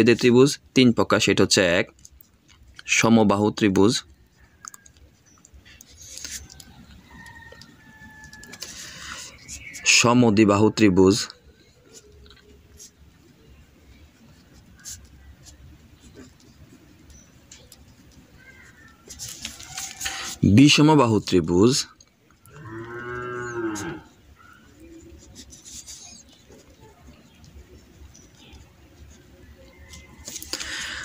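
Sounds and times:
man speaking: 0.0 - 1.9, 2.8 - 4.1, 9.8 - 11.4, 20.4 - 22.0
pen scratching on paper: 14.0 - 20.5, 24.5 - 30.2.

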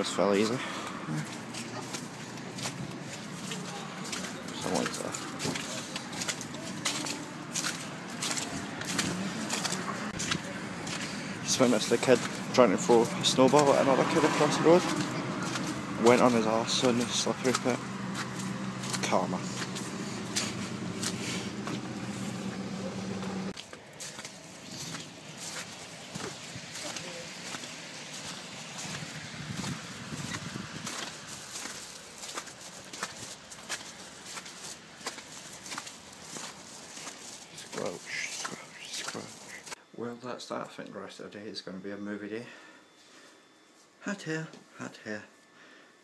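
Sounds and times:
outdoor background noise: 0.0 - 46.0
footsteps in slush: 0.1 - 39.8.

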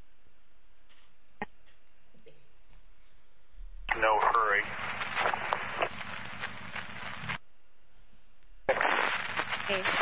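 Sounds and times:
person speaking over radio: 3.9 - 4.8
radio transmission hiss: 3.9 - 7.4, 8.7 - 10.0.

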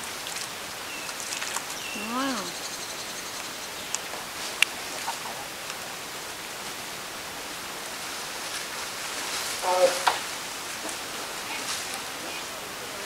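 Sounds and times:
steady hiss: 0.0 - 13.0
person calling: 2.0 - 2.6.

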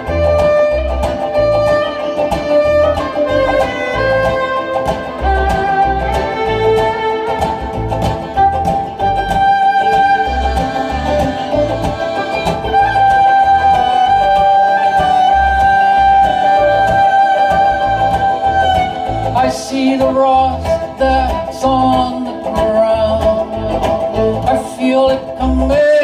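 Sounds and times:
low drum beat: 0.0 - 24.7
banjo: 0.0 - 26.0
fiddle long bowed notes: 0.0 - 26.0
guitar strumming: 0.0 - 26.0.

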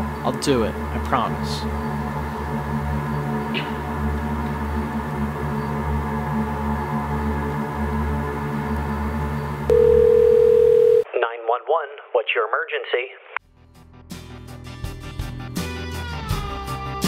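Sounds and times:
ambient music drone: 0.0 - 9.8
telephone ringback tone: 9.7 - 11.1
person speaking over telephone: 11.0 - 13.4.

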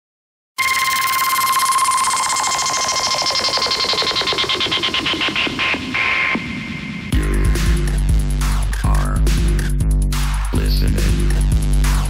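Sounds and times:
high beeping tone: 0.6 - 4.3.

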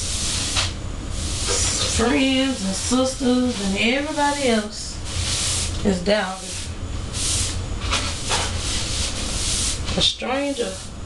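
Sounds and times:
broom sweeping floor: 0.0 - 11.0.

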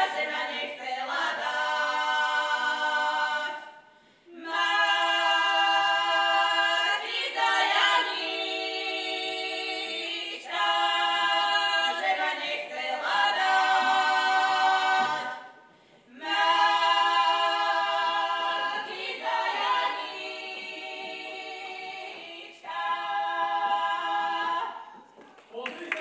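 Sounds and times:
women singing unaccompanied: 0.0 - 3.8, 4.4 - 25.1.

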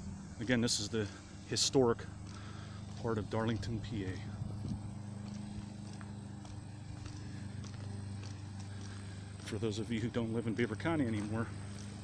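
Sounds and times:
steady low hum: 0.0 - 12.0
footsteps on pavement: 0.2 - 12.0.

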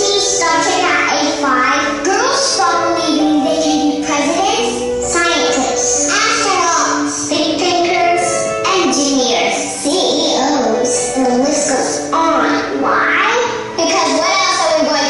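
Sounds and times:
instrumental backing music: 0.0 - 15.0.

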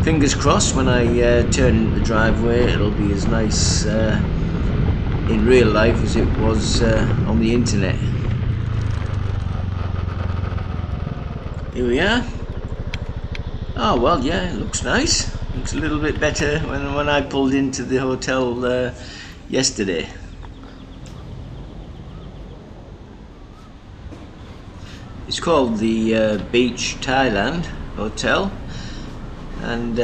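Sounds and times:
motorcycle engine running: 0.0 - 30.0
wind and road noise: 0.0 - 30.0
faint rapid chirping: 19.0 - 25.8
faint wavering bird calls: 19.0 - 25.8.

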